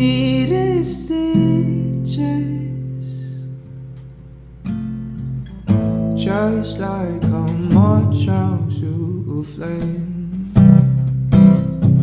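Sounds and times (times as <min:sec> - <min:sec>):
person singing: 0:00.0 - 0:03.5, 0:06.2 - 0:11.1
acoustic guitar strumming chords: 0:00.0 - 0:12.0.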